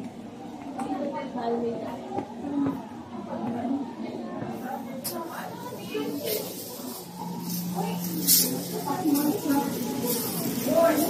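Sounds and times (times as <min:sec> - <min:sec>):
indistinct background voices: 0:00.0 - 0:11.0.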